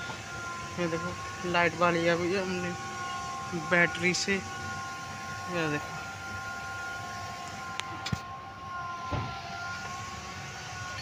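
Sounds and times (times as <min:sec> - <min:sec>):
steady high whine: 0:00.0 - 0:11.0.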